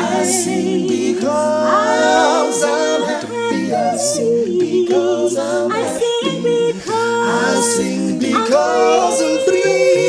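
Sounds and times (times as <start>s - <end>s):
a cappella group singing a hymn: 0.0s - 10.0s.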